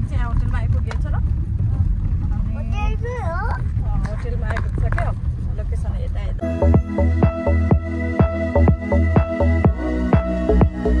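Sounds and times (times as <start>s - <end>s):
car cabin rumble: 0.0s - 7.8s.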